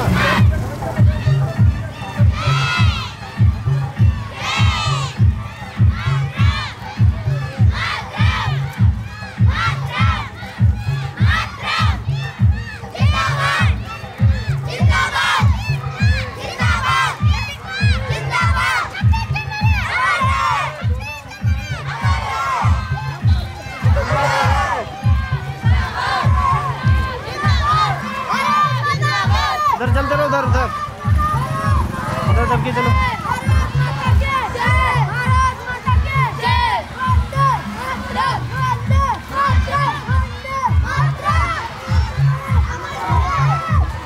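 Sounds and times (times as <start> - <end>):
children shouting slogans: 0.0 - 44.0
steady low beat: 0.0 - 44.0.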